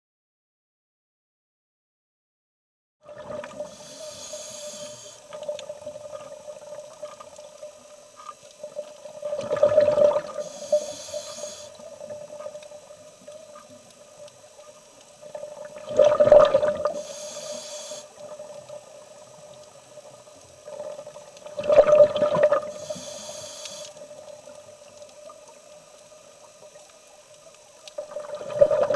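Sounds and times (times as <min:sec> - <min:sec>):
steady hum: 0:03.2 - 0:28.9
hissing regulator inhale: 0:03.4 - 0:05.6, 0:09.7 - 0:12.2, 0:16.6 - 0:18.5, 0:22.5 - 0:24.1
exhaled bubbles bursting: 0:09.3 - 0:10.4, 0:15.7 - 0:17.0, 0:20.7 - 0:22.7, 0:28.1 - 0:28.9.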